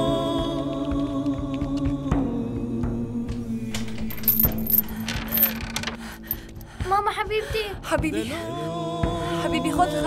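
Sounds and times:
padlock and chain rattling: 0:03.4 - 0:06.7.

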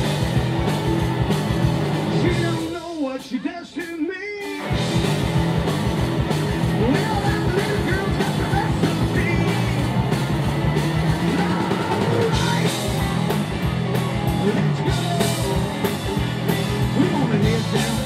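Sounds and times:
electric guitar bending notes: 0:00.0 - 0:02.7, 0:04.6 - 0:18.0
live rock band playing: 0:00.0 - 0:18.0.

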